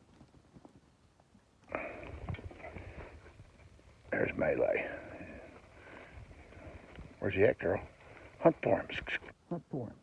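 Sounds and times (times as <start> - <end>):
brush crackling: 1.6 - 9.4.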